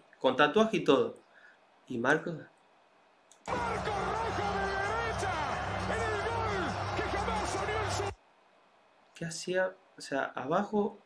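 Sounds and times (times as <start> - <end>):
excited commentator voice: 3.5 - 8.2
stadium crowd noise: 3.5 - 8.2.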